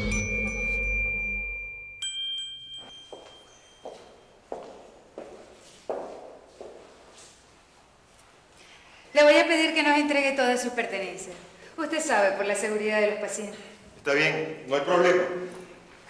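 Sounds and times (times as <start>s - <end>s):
music sting with chime tones: 0.0s - 2.0s
footsteps on tiled floor: 2.7s - 8.6s.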